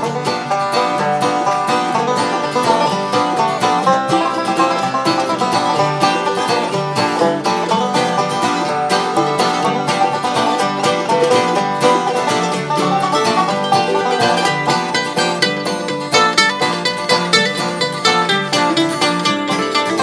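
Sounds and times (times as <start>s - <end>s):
banjo fast picked notes: 0.0s - 20.0s
bluegrass band instrumental: 0.0s - 20.0s.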